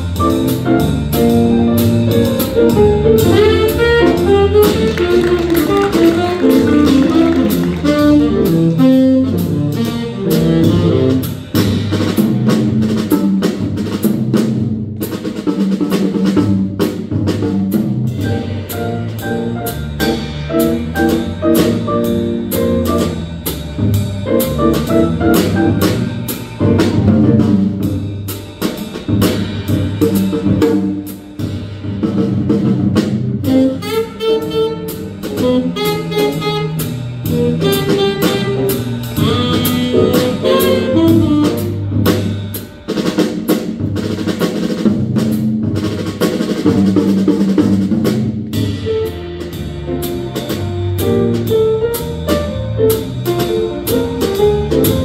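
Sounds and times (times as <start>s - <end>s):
electric bass walking: 0.0s - 42.8s, 43.6s - 55.0s
drum kit with cymbals: 0.0s - 55.0s
higher melody line: 0.4s - 11.3s, 33.5s - 42.1s.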